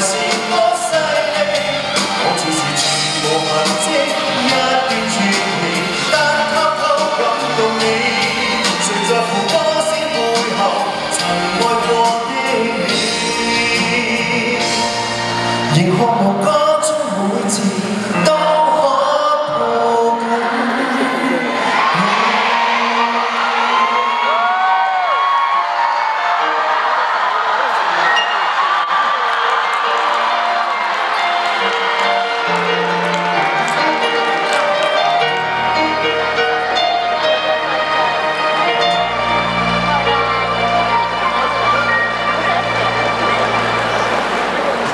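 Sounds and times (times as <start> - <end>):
keyboards holding long notes: 0.0 - 44.9
crowd cheering and screaming: 20.1 - 44.9.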